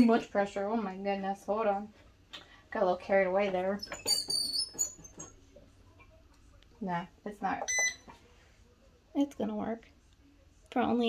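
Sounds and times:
high-pitched metal squeaks: 3.8 - 5.3.

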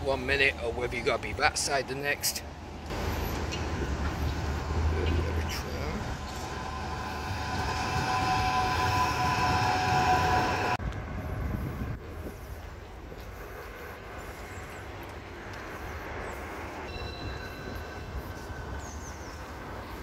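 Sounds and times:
quiet street noise: 0.0 - 20.0
tram wheels rumbling: 2.6 - 16.2
tram motors whining: 2.9 - 10.9.

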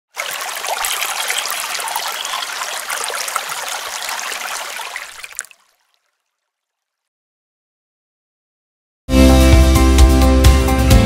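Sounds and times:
trickling water splashing: 0.0 - 7.0.

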